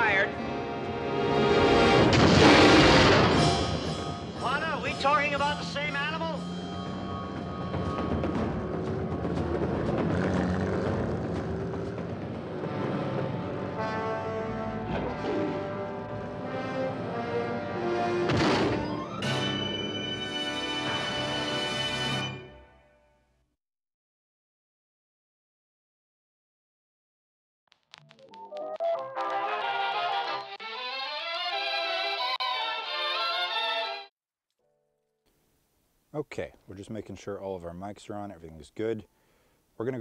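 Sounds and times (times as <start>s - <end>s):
trailer music: 0.0s - 22.8s
loud burst: 1.8s - 4.1s.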